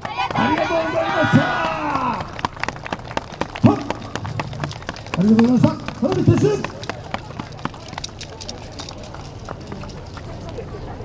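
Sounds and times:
running footsteps on asphalt: 0.0s - 11.0s.

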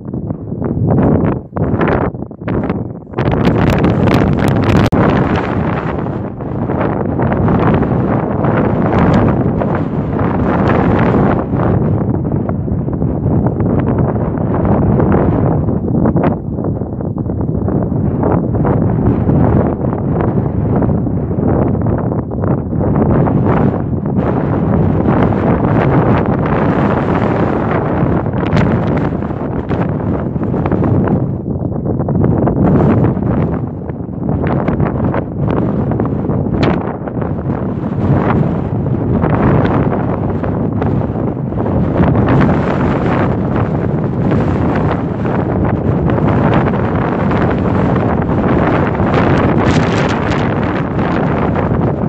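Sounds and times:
strong wind buffeting microphone: 0.0s - 52.0s.

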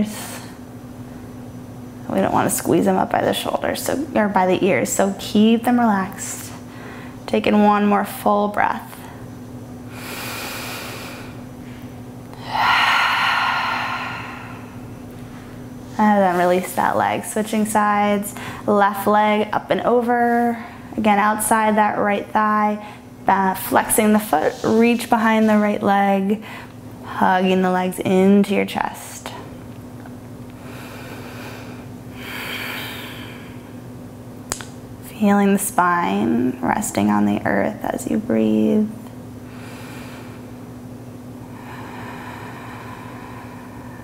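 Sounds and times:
woman breathing deeply: 6.6s - 7.3s, 9.8s - 16.0s, 18.3s - 18.7s, 26.4s - 26.8s, 30.6s - 33.8s, 39.4s - 40.7s, 41.4s - 44.0s.

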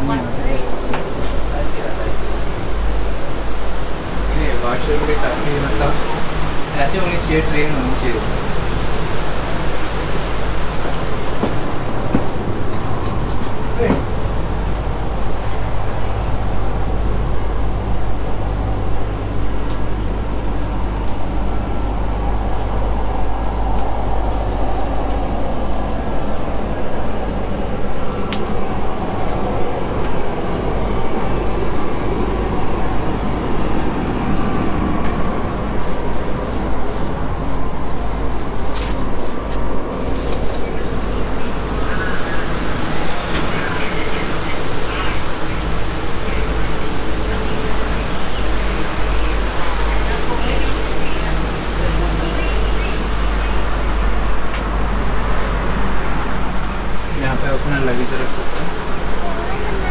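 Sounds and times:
train carriage rushing noise: 0.0s - 59.9s
faint voices: 21.3s - 59.9s.

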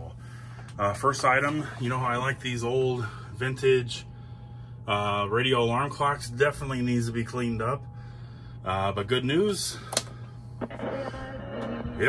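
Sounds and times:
steady low hum: 0.0s - 12.0s
radio switch click: 9.9s - 11.0s
music from small radio speaker: 10.6s - 12.0s.

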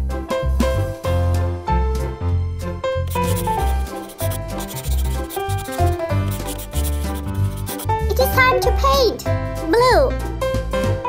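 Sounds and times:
marker rubbing across paper: 3.1s - 8.4s.

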